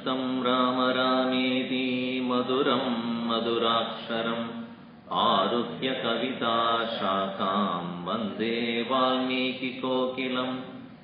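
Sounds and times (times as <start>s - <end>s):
man chanting verses: 0.0s - 11.0s.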